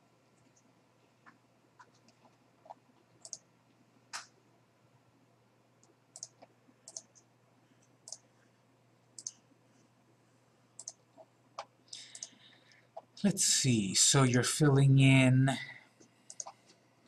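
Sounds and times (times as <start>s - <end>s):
low steady hum: 0.0s - 17.0s
computer mouse clicks: 1.3s - 3.5s, 5.8s - 8.3s, 9.2s - 9.4s, 10.8s - 13.1s, 16.3s - 16.8s.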